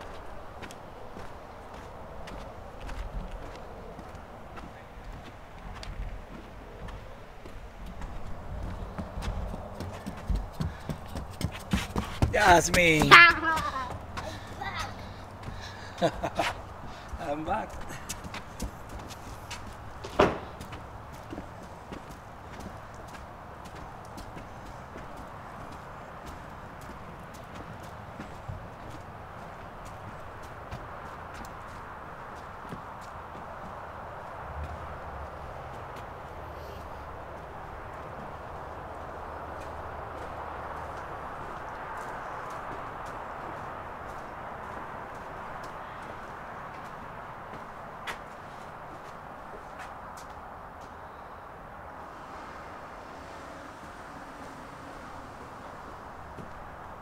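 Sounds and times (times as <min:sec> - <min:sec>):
footsteps running on wooden boards: 0:00.0 - 0:36.1
steady background noise: 0:00.0 - 0:57.0.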